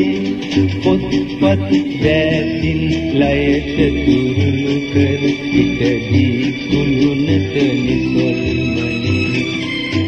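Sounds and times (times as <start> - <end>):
pop song playing: 0.0 - 10.0.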